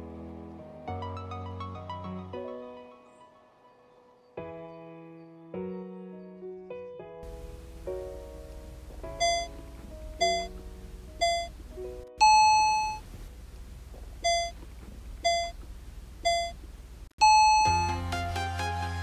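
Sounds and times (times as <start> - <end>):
timer beeps: 9.2 - 9.6, 10.2 - 10.6, 11.2 - 11.6, 12.2 - 13.0, 14.2 - 14.6, 15.2 - 15.6, 16.2 - 16.6, 17.2 - 18.0.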